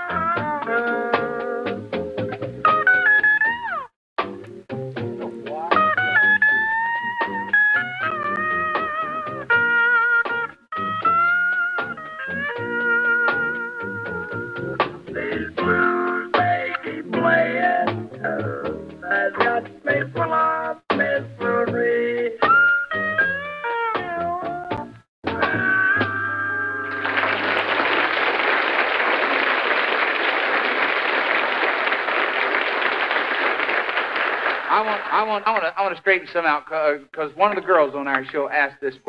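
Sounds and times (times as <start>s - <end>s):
plucked backing rhythm: 0.0s - 27.1s, 34.7s - 39.0s
pedal steel guitar: 25.3s - 27.2s.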